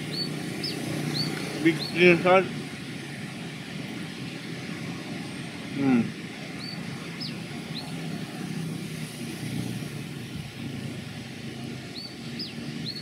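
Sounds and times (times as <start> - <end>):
city traffic rumble: 0.0 - 13.0.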